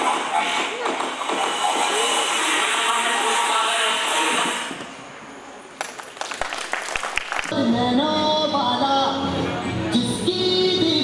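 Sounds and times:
dance song: 0.0s - 4.8s
audience clapping: 5.8s - 7.6s.

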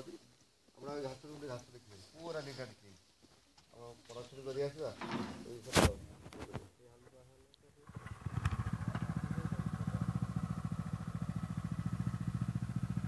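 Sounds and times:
small engine running: 7.8s - 13.0s.

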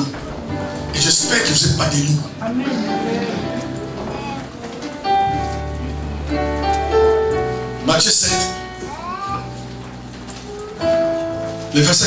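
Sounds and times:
soft keyboard chords: 0.0s - 12.0s.

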